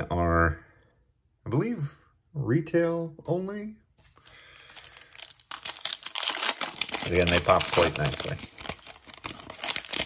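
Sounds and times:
foil wrapper crinkling: 4.2s - 10.0s.

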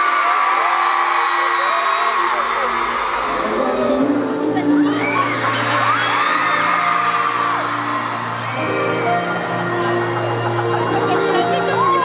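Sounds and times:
crowd screaming and whooping: 0.0s - 12.0s
live pop band playing: 2.0s - 12.0s.

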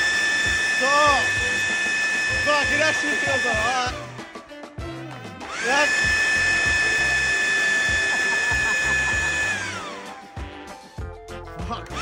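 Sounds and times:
leaf blower running: 0.0s - 10.4s.

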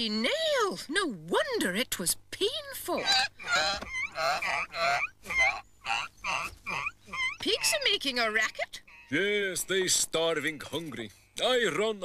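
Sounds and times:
pigs squealing: 3.0s - 8.0s, 8.7s - 9.4s.

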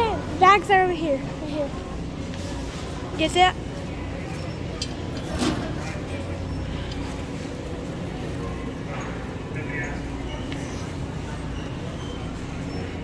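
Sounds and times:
faint background chatter: 0.0s - 13.0s.

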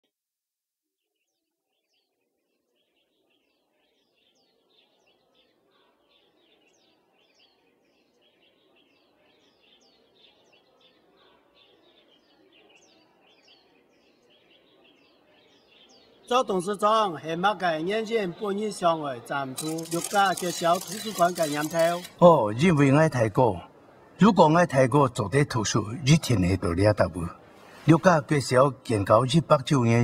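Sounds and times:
faint birds chirping: 1.0s - 30.0s.

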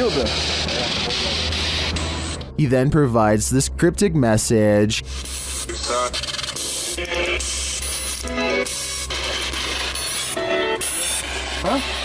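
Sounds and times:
radio static hiss: 3.9s - 7.5s.

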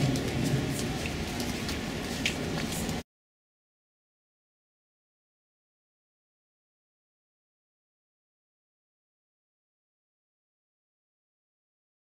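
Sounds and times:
low rumble: 0.0s - 3.0s.

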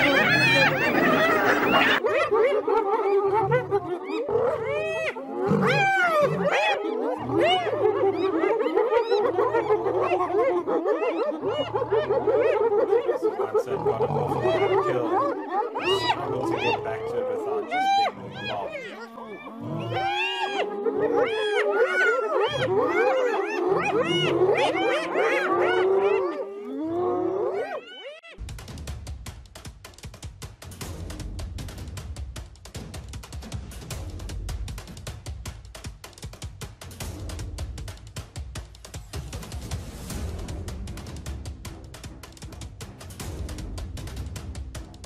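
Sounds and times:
animal high sliding cries: 0.0s - 2.0s
hyena held call: 0.0s - 2.0s
hyenas whooping: 0.0s - 28.4s
animal low growls: 18.1s - 21.4s.

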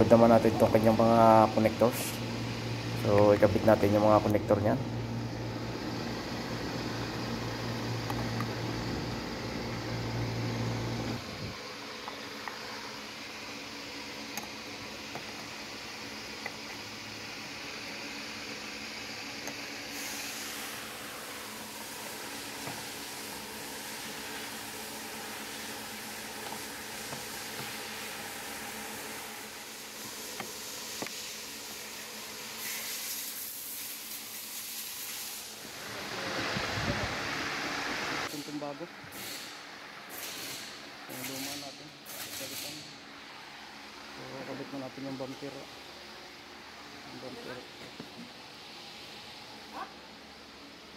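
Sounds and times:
fan-like mechanical hum: 0.0s - 50.9s.

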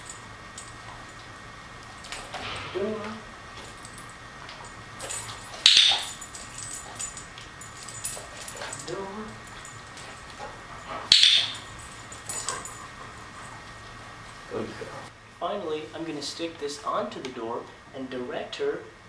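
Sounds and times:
dog-training clicker clicks: 11.1s - 11.7s.

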